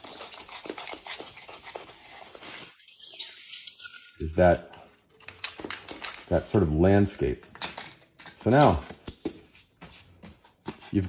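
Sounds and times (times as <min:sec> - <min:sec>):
knife cutting foam board: 0:00.0 - 0:03.8.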